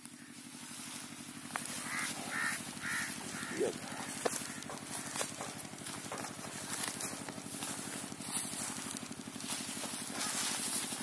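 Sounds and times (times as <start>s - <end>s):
low pulsing drone: 0.0s - 11.0s
crow cawing: 1.6s - 6.6s, 10.2s - 10.6s.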